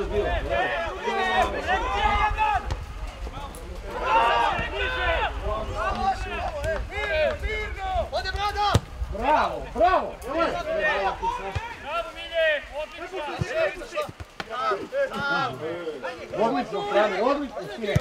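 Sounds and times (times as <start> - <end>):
men shouting: 0.0 - 2.7, 3.8 - 17.8.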